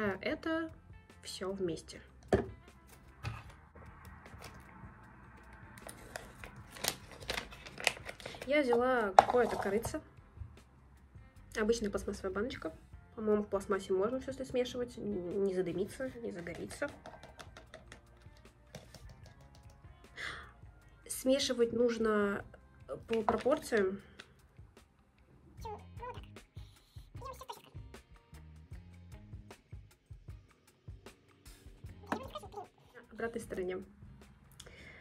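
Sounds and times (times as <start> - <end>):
background music: 0.0 - 35.0
plastic sachet crinkling: 5.8 - 8.6
faint plastic rustling: 5.8 - 9.8.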